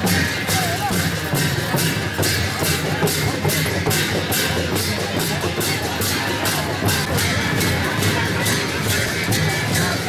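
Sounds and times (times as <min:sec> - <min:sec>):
barrel drums beaten with sticks: 0:00.0 - 0:10.0.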